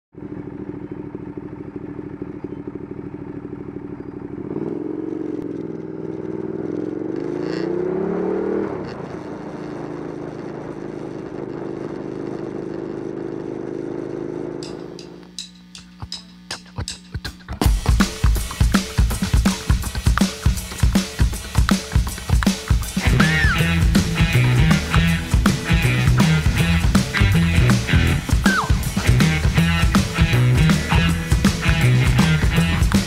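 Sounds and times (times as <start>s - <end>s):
motorcycle engine revving: 0.2s - 33.0s
drum-led music: 14.6s - 33.0s.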